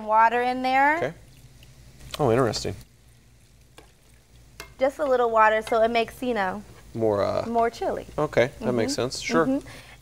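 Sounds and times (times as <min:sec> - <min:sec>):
soft sizzle: 0:00.0 - 0:10.0.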